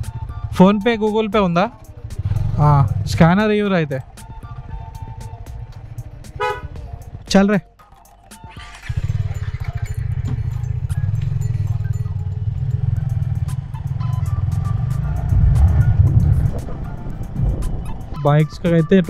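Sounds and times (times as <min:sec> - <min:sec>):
motorcycle engine pulling away: 0:00.0 - 0:07.3, 0:08.0 - 0:18.3
wind on microphone: 0:09.2 - 0:18.6.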